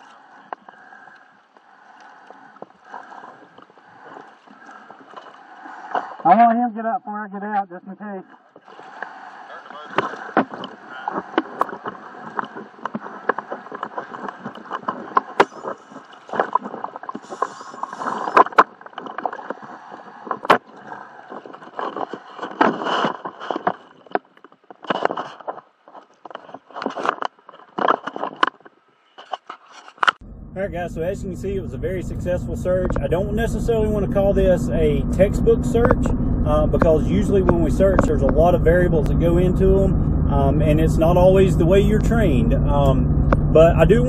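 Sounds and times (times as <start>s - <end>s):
water sloshing against boat hull: 0.0s - 6.4s, 8.3s - 30.2s
sharp clicks and crackles: 10.0s - 30.2s.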